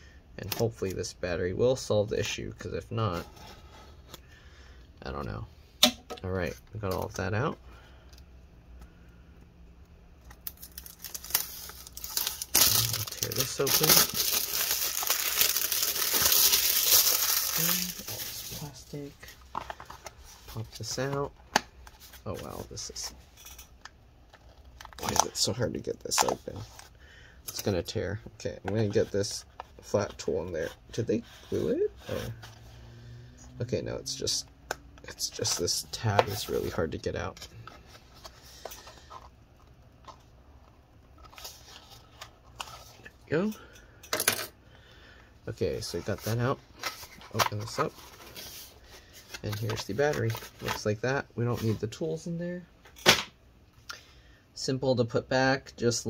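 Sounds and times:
plastic wrap crinkling: 10.4s - 18.9s.

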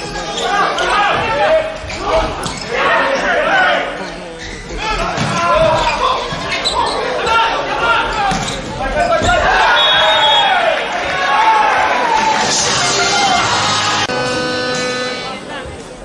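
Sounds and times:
voices shouting: 4.8s - 14.1s.

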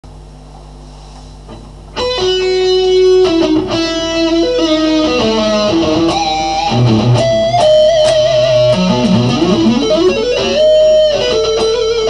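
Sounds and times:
electric guitar hum: 1.4s - 12.0s
electric guitar lead notes: 1.9s - 12.0s.

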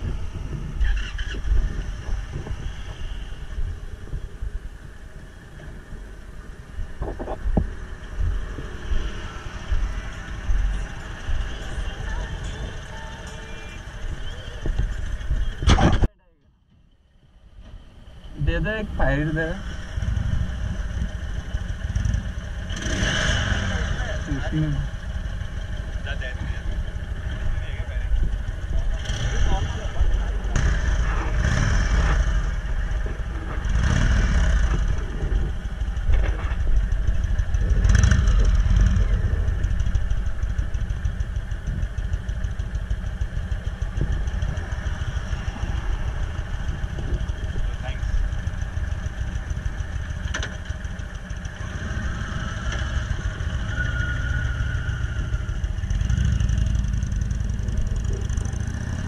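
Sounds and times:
motorcycle engines idling: 0.0s - 15.7s, 16.3s - 59.0s.

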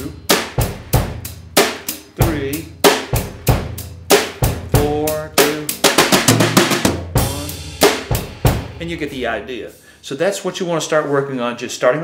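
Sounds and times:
drum kit playing a beat: 0.0s - 10.0s.

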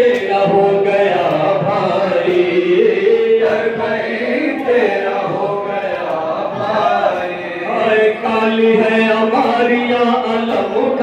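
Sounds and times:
men chanting a lament: 0.0s - 11.0s.

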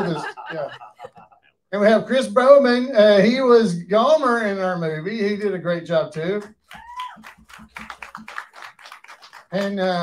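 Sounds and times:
light scattered applause: 6.6s - 10.0s.

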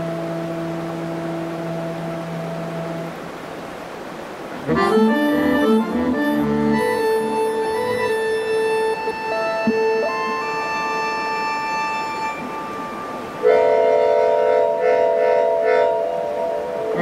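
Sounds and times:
keyboard harmonica reedy chords: 4.6s - 12.9s.

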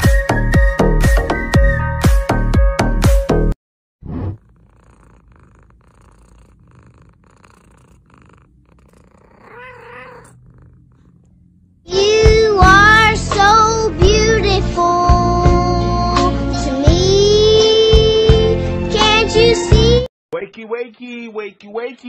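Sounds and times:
cat purring: 4.3s - 13.7s
cat mewing: 4.4s - 11.4s.

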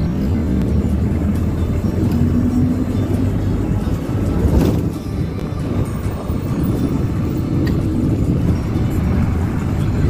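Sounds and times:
background music: 0.0s - 10.0s
low rumble of moving vehicle: 0.0s - 10.0s.

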